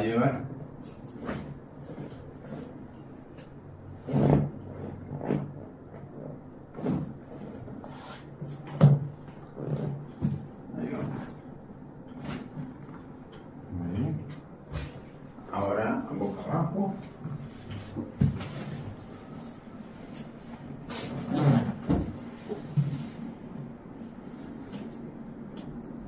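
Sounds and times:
treatment table knocks and creaks: 1.1 - 11.3, 21.2 - 23.2.

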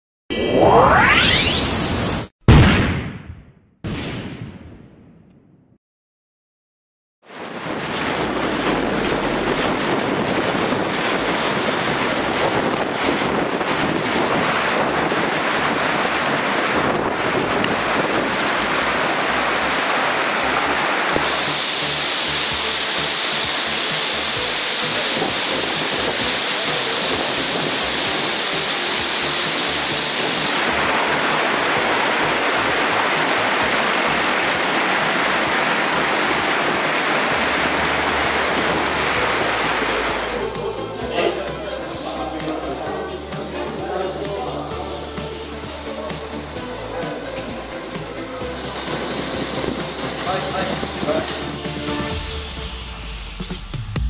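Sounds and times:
hail and rain on paving: 7.3 - 52.3.

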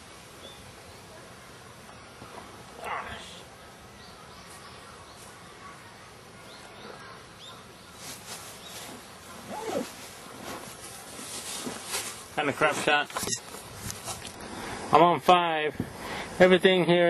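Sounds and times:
steady background hiss: 0.0 - 17.0
faint bird chirps: 2.8 - 9.9.

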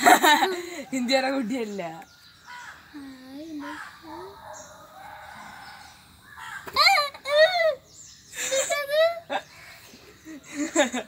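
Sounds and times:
birds calling: 0.0 - 11.0
person laughing: 8.4 - 9.4.

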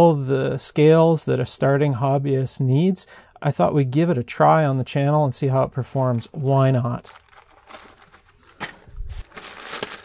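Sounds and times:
cloth rustling: 7.1 - 10.0
pouch thumping down: 7.7 - 10.0.

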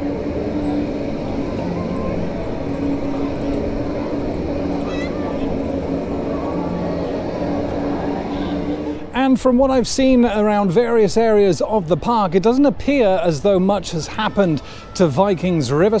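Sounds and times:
chatter of people: 0.0 - 9.1
ride machinery humming: 0.0 - 16.0.

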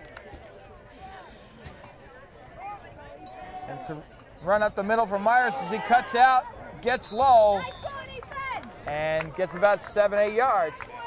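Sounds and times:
players shouting: 2.6 - 11.0.

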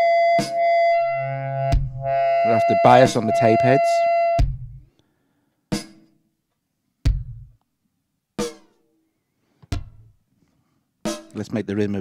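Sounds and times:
drum machine kick drum hit: 1.8 - 2.2, 4.4 - 4.8, 7.1 - 7.6, 9.7 - 10.1.

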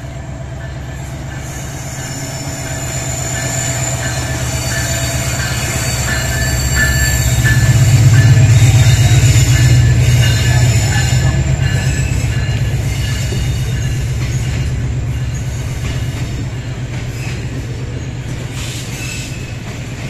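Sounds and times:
diesel locomotive engine rumble: 0.0 - 20.0
wheels squealing: 1.4 - 16.4.

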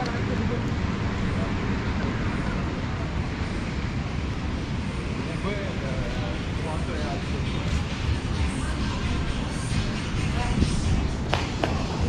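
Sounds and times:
low outdoor rumble: 0.0 - 12.0
passers-by's voices: 0.0 - 12.0.

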